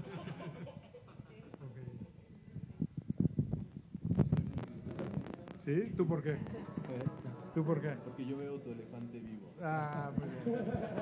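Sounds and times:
man speaking: 0:05.6 - 0:10.4.

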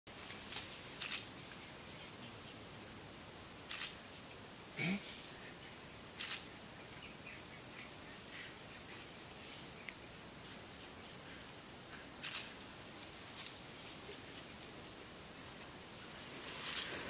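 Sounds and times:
insects chirring: 0:00.1 - 0:17.0.

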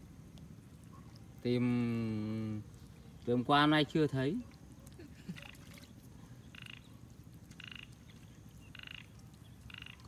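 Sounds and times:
frog croaking: 0:06.4 - 0:10.0.

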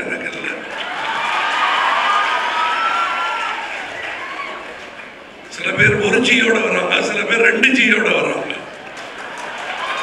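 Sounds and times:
audience applauding: 0:00.7 - 0:05.1, 0:08.7 - 0:10.0.

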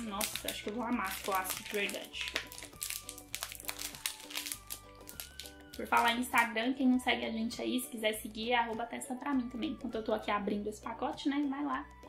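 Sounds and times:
plastic package crinkling: 0:00.0 - 0:06.4
soft background music: 0:00.0 - 0:12.0.

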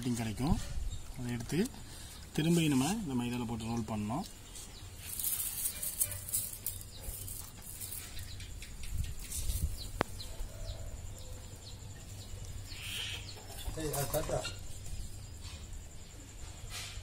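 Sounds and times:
distant animal call: 0:12.6 - 0:14.7.

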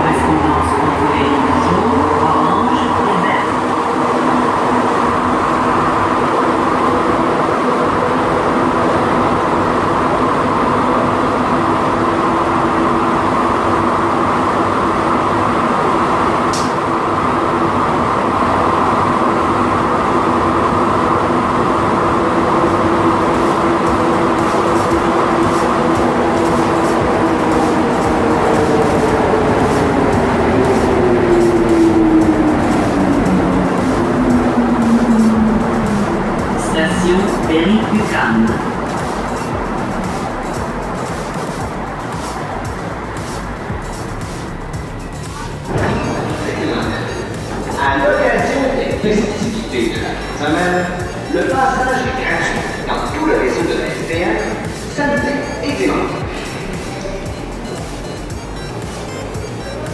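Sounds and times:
train rumbling: 0:00.0 - 0:59.9
sharp click: 0:16.5 - 0:16.8
traction motor whine: 0:19.8 - 0:50.5.

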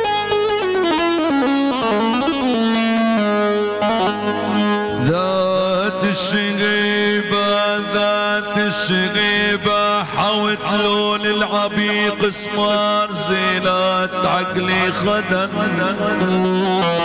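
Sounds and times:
electronic keyboard melody: 0:00.0 - 0:05.8.

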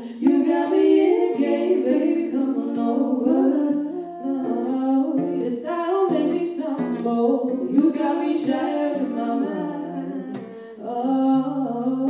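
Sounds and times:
acoustic guitar: 0:00.0 - 0:12.0
two women singing: 0:00.0 - 0:12.0.

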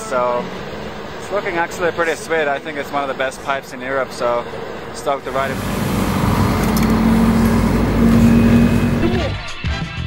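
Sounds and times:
snowmobile engine droning: 0:05.3 - 0:09.3
music: 0:09.0 - 0:10.0.

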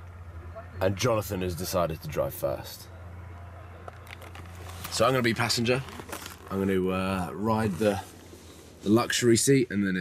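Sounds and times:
faint clicks and rustles: 0:03.8 - 0:09.2.

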